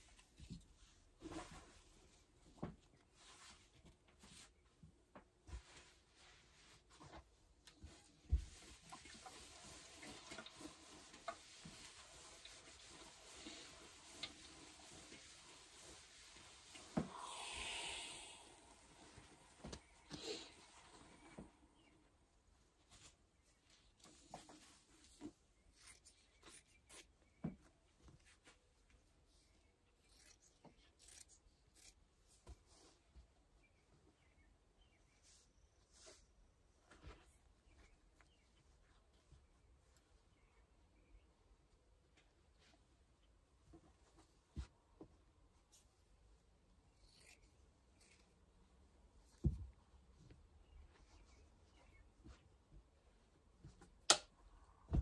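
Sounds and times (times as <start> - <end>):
iron hissing: 16.6 - 21.7.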